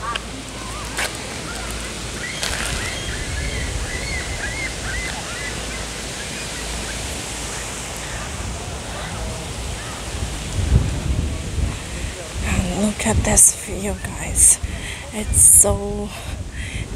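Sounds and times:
wind buffeting microphone: 0.0 - 16.9
low rumble: 7.7 - 16.9.

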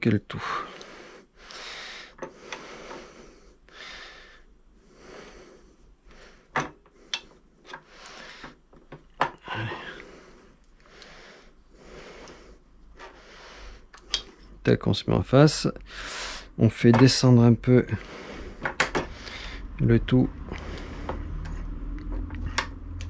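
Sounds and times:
man breathing: 0.3 - 8.7, 9.4 - 14.6, 15.8 - 16.6, 17.8 - 23.0.

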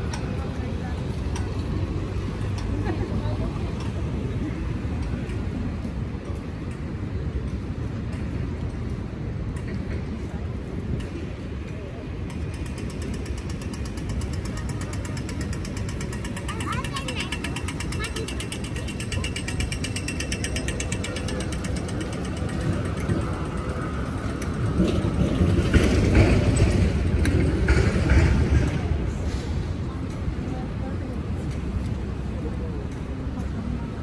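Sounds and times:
passers-by talking: 0.0 - 34.0
rumble of passing vehicles: 0.0 - 34.0
traffic: 0.0 - 34.0.

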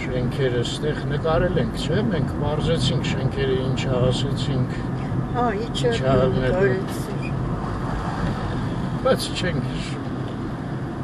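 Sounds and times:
car engine and road noise: 0.0 - 11.0
person talking: 5.4 - 7.1.

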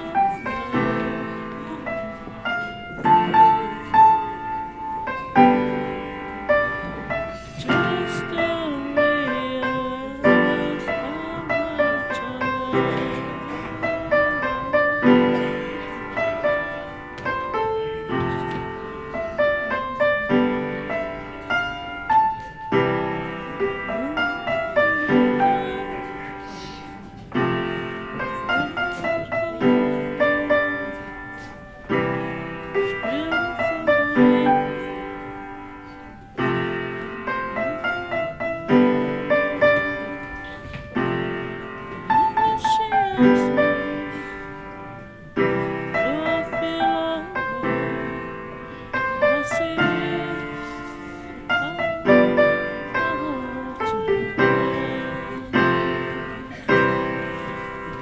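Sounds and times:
upright piano playing chords: 0.0 - 58.0.

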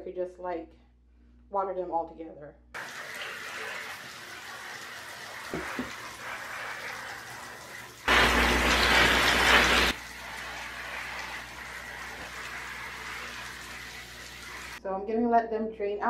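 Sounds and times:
loud water spray: 2.8 - 14.8
shower water running: 2.8 - 14.8.

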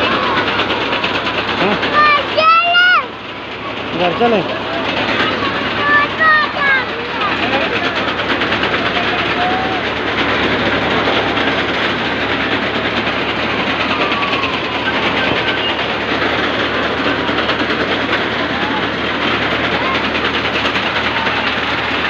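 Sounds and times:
ride metallic rattle: 0.0 - 22.0
high shouts: 8.9 - 10.0.

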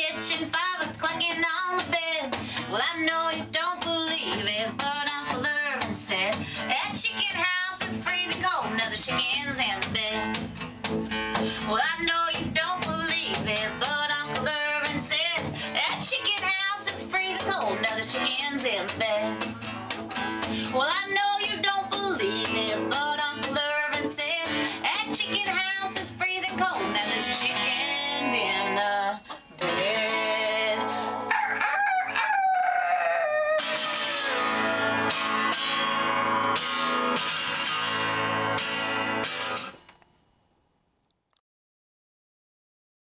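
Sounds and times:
acoustic guitar strumming: 0.0 - 31.3, 33.6 - 40.0.

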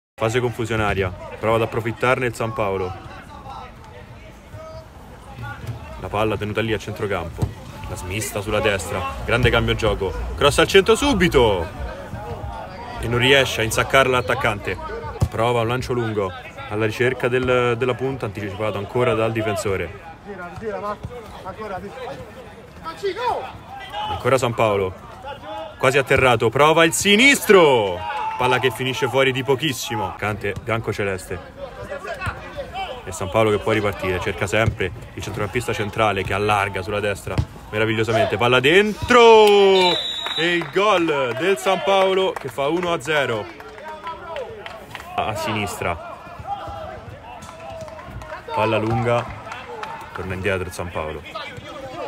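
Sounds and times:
men calling and shouting: 0.2 - 52.0.

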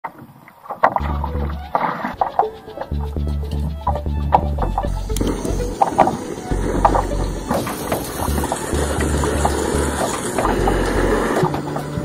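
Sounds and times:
deep bass line: 1.0 - 12.0.

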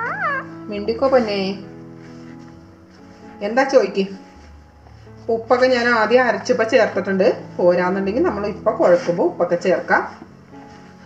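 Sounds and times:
parakeet calling: 0.0 - 0.7
background music: 0.0 - 11.0.

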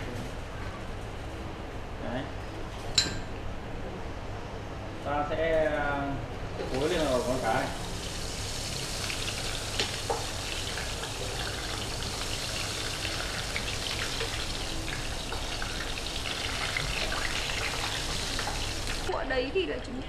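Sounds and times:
fish sizzling in hot oil: 6.6 - 19.1.

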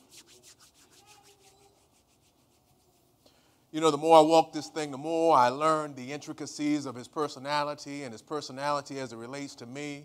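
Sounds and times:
palms rubbing together: 0.0 - 3.5.

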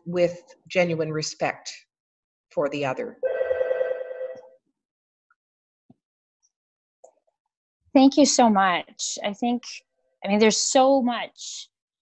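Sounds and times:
electronic ringing tone with trill: 3.2 - 4.6.

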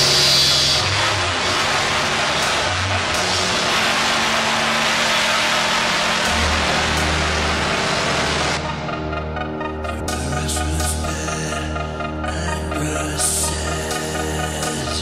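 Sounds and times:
distorted noise wall: 0.0 - 15.0
low sustained bass notes: 0.0 - 15.0
synth lines: 0.0 - 15.0.

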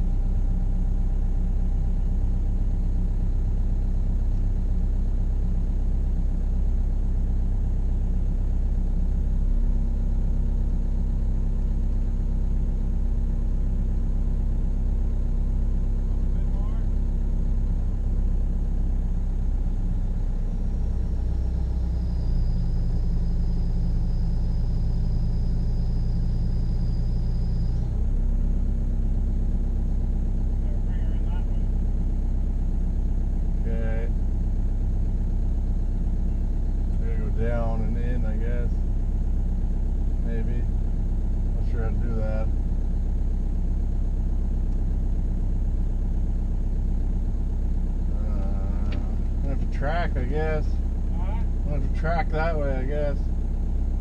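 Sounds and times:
deeper hum: 0.0 - 54.0
diesel engine running: 0.0 - 54.0.

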